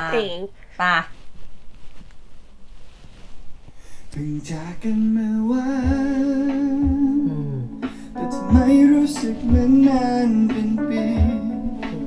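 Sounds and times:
man singing with vibrato: 4.1s - 12.0s
soft low beats: 4.6s - 12.0s.

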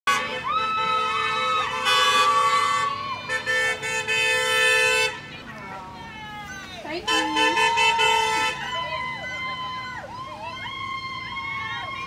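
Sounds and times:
car horns honking: 0.1s - 5.6s, 6.4s - 8.9s
people shouting: 0.1s - 12.0s
vehicles driving past: 0.1s - 12.0s.

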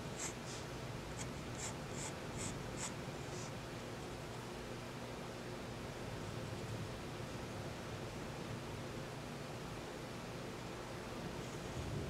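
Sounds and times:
pencil scratching on paper: 0.2s - 0.6s, 1.2s - 3.5s.

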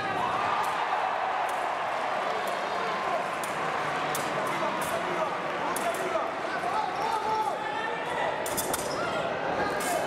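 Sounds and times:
murmur of voices in echoing hall: 0.0s - 10.0s.

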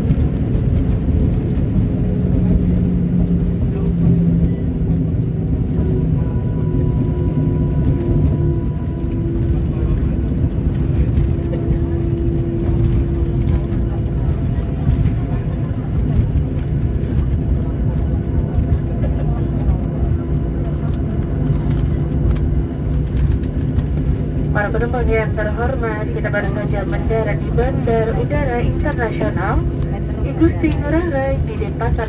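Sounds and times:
jet engines and wheels rumbling: 0.0s - 32.0s
steady engine tones: 0.0s - 32.0s.

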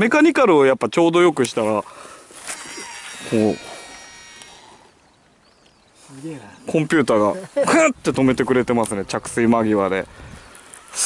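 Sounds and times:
fishing reel spool whine: 2.2s - 5.4s.

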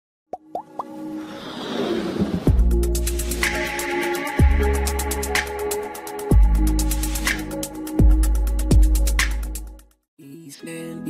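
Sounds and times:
quick rising pops: 0.6s - 2.7s.

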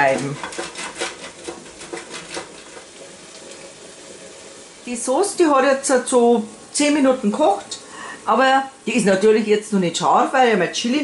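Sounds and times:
cheese scraped over grater: 0.0s - 2.8s.

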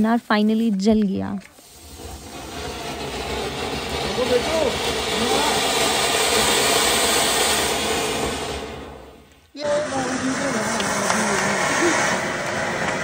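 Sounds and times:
firework fountain hissing: 0.9s - 13.0s.

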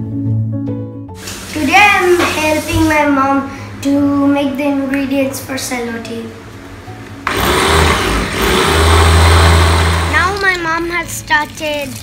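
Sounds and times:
electric chopper motor: 7.2s - 10.6s
blade grinding rice and water: 7.2s - 12.0s.

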